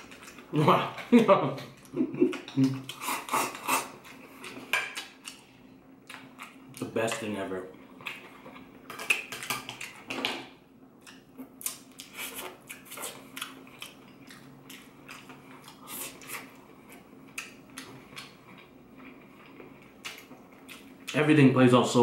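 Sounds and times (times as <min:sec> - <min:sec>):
person chewing crispy food: 0:00.0 - 0:07.1, 0:11.0 - 0:21.2.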